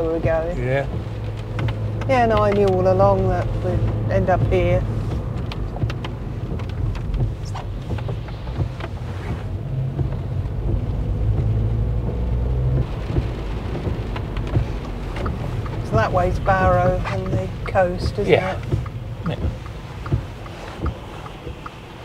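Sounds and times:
engine and tyre rumble: 0.0s - 22.0s
wet tyres hissing: 0.0s - 22.0s
small ticks and taps: 0.9s - 9.0s, 9.9s - 21.8s.

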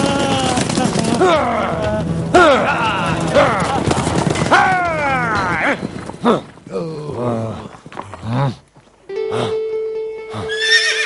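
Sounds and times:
background music steady note: 0.8s - 5.8s, 9.0s - 11.0s
horse whinnying: 10.3s - 11.0s.

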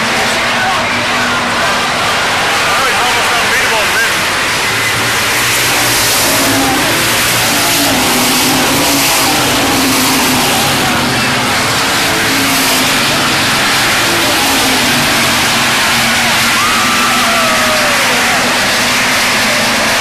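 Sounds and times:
race car engines droning: 0.0s - 20.0s.

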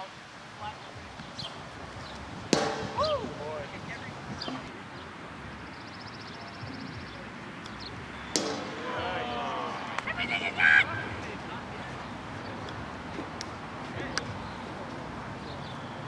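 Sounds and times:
plastic ball striking: 2.5s - 3.0s, 8.4s - 8.7s
players shouting: 2.6s - 3.8s, 8.2s - 12.6s.

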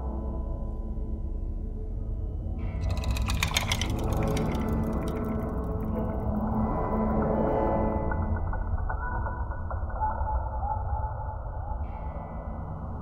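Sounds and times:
mechanical clicking textures: 2.8s - 7.5s.

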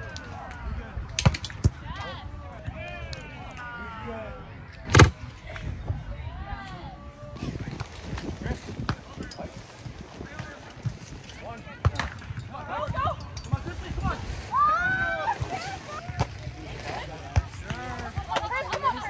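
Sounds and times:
volleyball hand smack: 4.9s - 5.1s.

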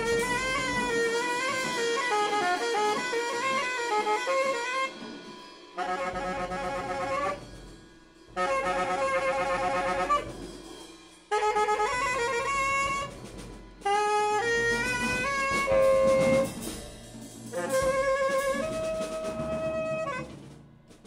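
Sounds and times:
tenor saxophone playing jazz: 0.0s - 7.5s, 8.4s - 10.4s, 11.3s - 13.2s, 13.8s - 16.7s, 17.5s - 20.6s
drum kit: 0.0s - 21.0s.

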